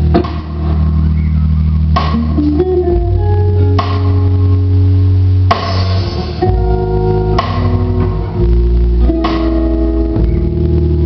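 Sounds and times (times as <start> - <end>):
drum accent: 0.0 - 11.0
electric guitar chord ringing: 5.7 - 11.0
low bass note: 6.1 - 11.0.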